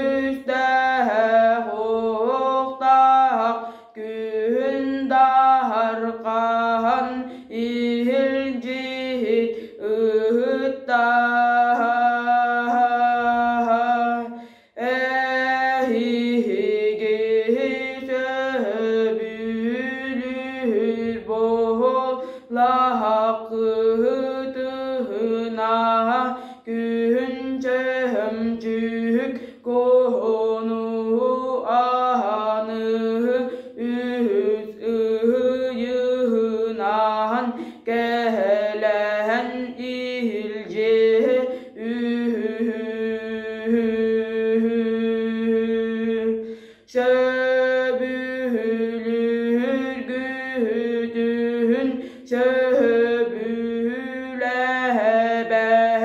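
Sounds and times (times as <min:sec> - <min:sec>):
boy singing unaccompanied: 0:00.0 - 0:56.0
boy breathing: 0:03.6 - 0:04.0, 0:09.5 - 0:09.8, 0:14.3 - 0:14.8, 0:22.2 - 0:22.5, 0:26.3 - 0:26.7, 0:29.4 - 0:29.7, 0:33.4 - 0:33.8, 0:37.5 - 0:37.9, 0:46.4 - 0:46.9, 0:52.0 - 0:52.3.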